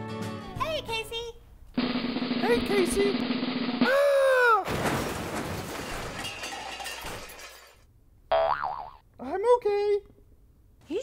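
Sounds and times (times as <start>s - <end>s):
loud clattering crash: 4.6s - 7.8s
short wobbly boing: 8.3s - 9.0s.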